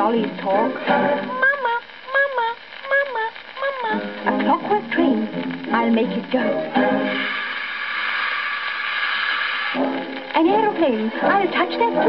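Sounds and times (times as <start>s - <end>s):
dance band record playing: 0.0s - 8.5s, 9.6s - 12.0s
high-pitched doll-like calls: 1.2s - 4.2s.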